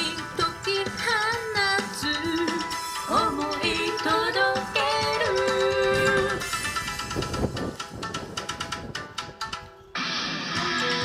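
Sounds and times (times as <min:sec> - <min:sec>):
dance music over loudspeaker: 0:00.0 - 0:06.6.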